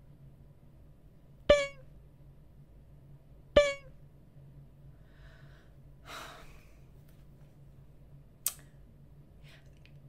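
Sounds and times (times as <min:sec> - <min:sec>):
comedic honk: 0:01.5 - 0:01.8, 0:03.6 - 0:03.9.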